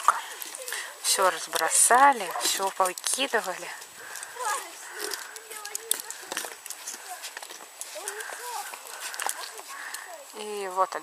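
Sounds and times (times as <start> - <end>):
horses crunching carrots: 0.0 - 11.0.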